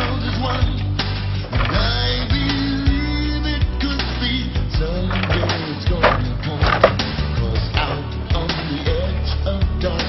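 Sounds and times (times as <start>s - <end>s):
background music with bass line: 0.0s - 10.0s
sharp knocks: 5.1s - 7.2s.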